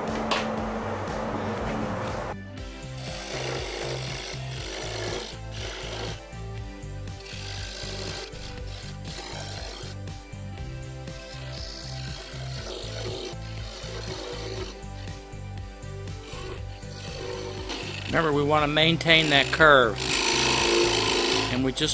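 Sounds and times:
background music with bass beat: 0.0 - 21.8
parting tool cutting spinning wood: 2.8 - 6.4, 7.1 - 10.2, 11.1 - 15.3, 16.0 - 21.9.

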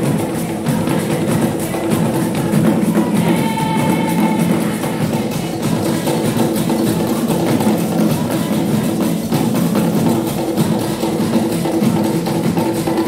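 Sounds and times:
drum ensemble playing: 0.0 - 13.0.

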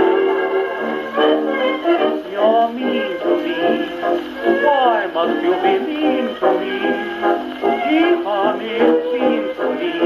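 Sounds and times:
dance band fox-trot on gramophone: 0.0 - 10.0.

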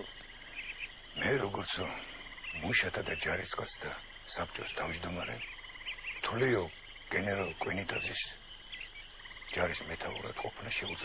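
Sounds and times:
faint rapidly pulsing chirr: 0.0 - 11.0
man speaking: 1.2 - 5.4, 6.2 - 8.4, 9.6 - 11.0.

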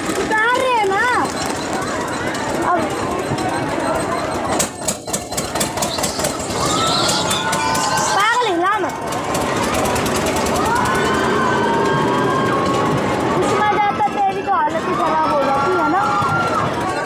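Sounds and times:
steady background noise: 0.0 - 17.0
riders screaming and shouting: 5.3 - 17.0.

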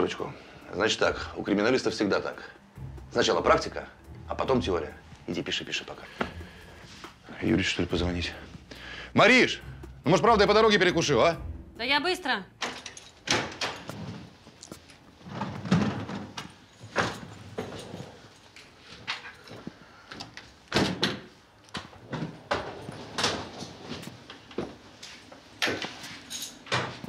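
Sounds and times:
wheeled suitcase rolling on floor: 13.7 - 19.7, 21.8 - 27.0.

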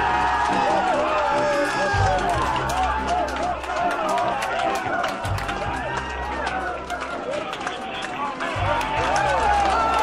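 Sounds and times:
crowd cheering and shouting: 0.0 - 10.0
music playing: 0.0 - 10.0
people clapping: 0.0 - 10.0.

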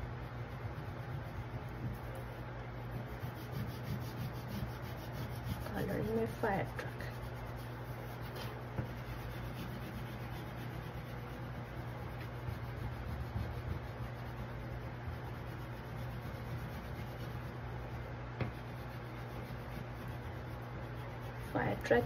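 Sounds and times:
steady low hum: 0.0 - 22.0
crayon scratching on paper: 0.2 - 22.0.

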